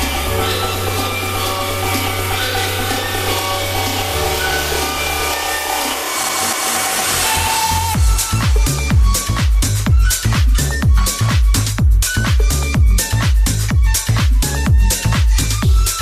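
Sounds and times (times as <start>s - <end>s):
house music breakdown: 0.0s - 16.0s.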